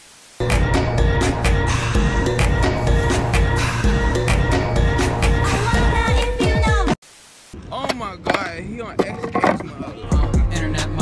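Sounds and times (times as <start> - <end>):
skateboard clacking on concrete: 7.8 - 10.1.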